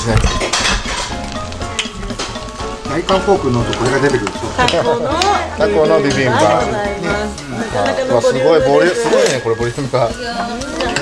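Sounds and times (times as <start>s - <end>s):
rice sizzling: 0.0s - 11.0s.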